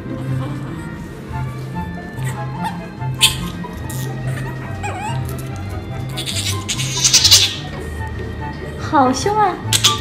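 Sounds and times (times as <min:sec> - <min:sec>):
puppy snapping vocalization: 0:09.7 - 0:10.0.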